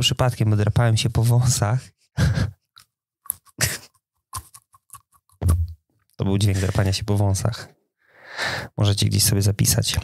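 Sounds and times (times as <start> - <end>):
scratching moustache stubble: 2.8 - 5.7.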